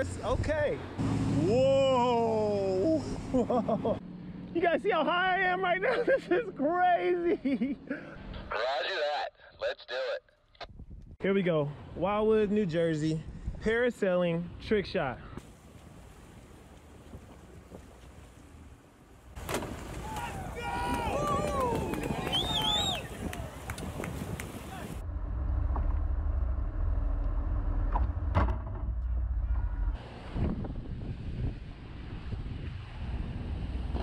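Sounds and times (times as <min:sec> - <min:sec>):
wind buffeting microphone: 0:10.6 - 0:11.2, 0:19.3 - 0:26.6, 0:27.3 - 0:34.0
people shouting excitedly: 0:20.0 - 0:23.6
heavy low rumble: 0:24.8 - 0:34.0.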